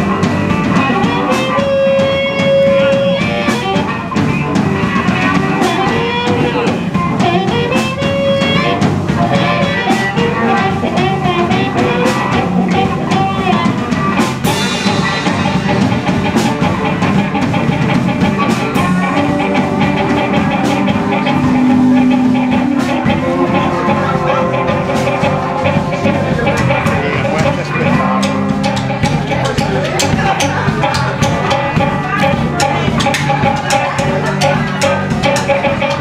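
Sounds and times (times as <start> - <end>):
drums with steady beat: 0.0 - 36.0
electric guitar: 0.0 - 36.0
harmonica through microphone: 0.0 - 36.0.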